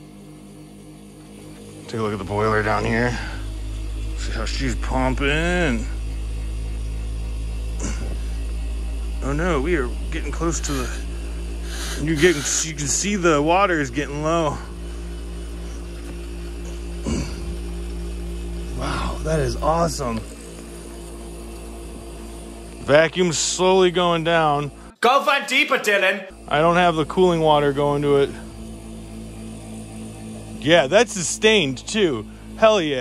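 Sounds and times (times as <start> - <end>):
steam turbine humming: 0.0 - 25.0, 25.9 - 33.0
man speaking: 1.9 - 3.5, 4.2 - 6.0, 12.0 - 14.7, 22.9 - 28.4, 30.6 - 33.0.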